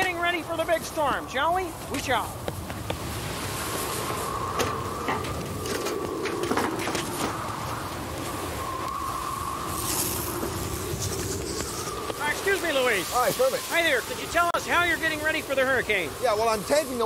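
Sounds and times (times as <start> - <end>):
steady wind with whistle: 0.0 - 17.0.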